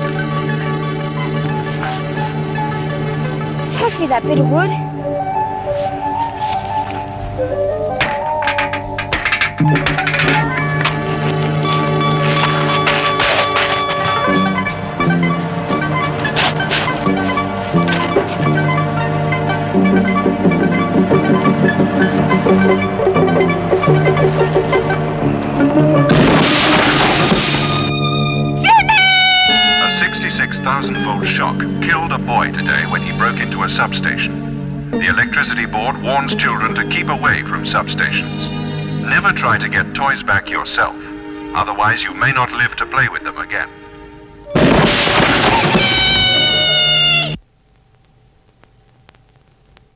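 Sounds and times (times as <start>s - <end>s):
quirky synth music: 0.0s - 31.8s, 43.8s - 47.4s
girl screaming: 28.6s - 30.0s, 45.6s - 47.4s.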